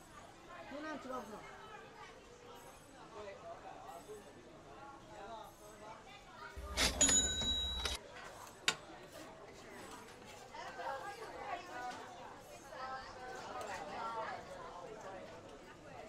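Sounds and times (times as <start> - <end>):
people chattering: 0.0 - 16.0
ringing metallic scrape: 6.6 - 8.0.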